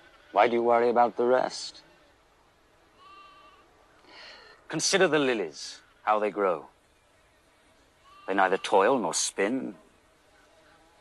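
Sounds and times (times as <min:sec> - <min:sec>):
faint animal bleat: 0:00.0 - 0:00.7, 0:02.9 - 0:03.7, 0:08.0 - 0:09.0.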